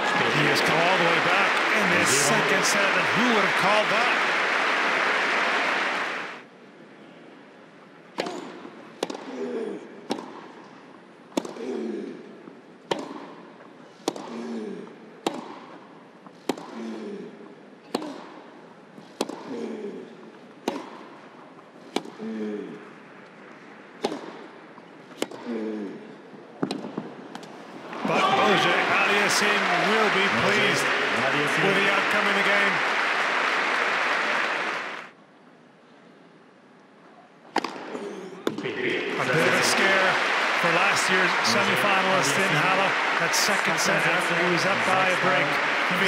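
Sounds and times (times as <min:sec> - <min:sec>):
crowd applause: 0:00.0 - 0:06.4, 0:27.8 - 0:35.1, 0:38.6 - 0:46.0
player grunting: 0:00.2 - 0:02.6.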